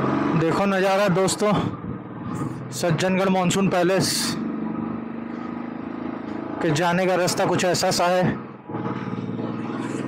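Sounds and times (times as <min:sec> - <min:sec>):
motorcycle engine running: 0:01.6 - 0:10.0.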